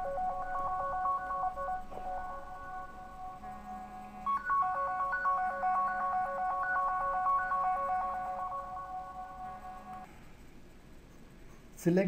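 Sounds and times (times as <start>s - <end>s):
electronic beeping tune: 0.0s - 10.1s.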